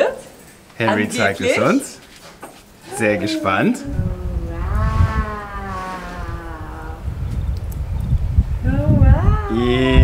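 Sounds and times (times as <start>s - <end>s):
person saying wooow in amazement: 2.9s - 7.0s
low rumble: 3.8s - 10.0s.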